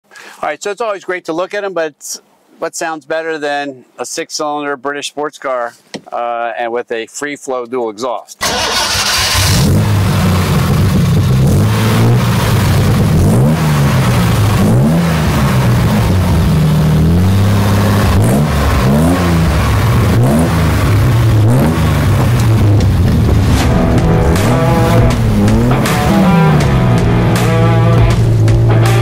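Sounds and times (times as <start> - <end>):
car engine revving over idle: 8.5 - 29.0.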